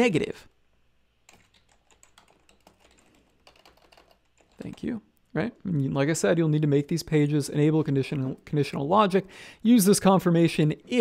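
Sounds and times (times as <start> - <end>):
faint typing on a keyboard: 1.2 - 5.3.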